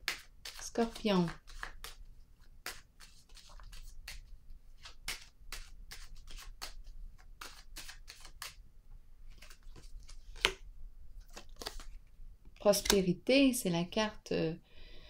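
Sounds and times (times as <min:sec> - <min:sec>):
cards being shuffled: 0:00.0 - 0:08.6, 0:09.3 - 0:10.6, 0:11.2 - 0:12.0.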